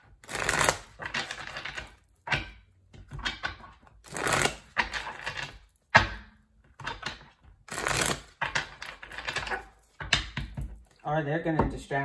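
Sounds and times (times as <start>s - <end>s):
cards being shuffled: 0.2s - 1.9s, 4.0s - 5.5s, 7.7s - 9.7s.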